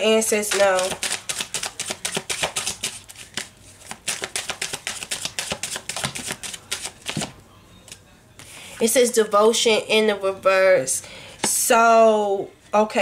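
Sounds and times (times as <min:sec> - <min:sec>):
cards being shuffled: 0:00.5 - 0:08.0.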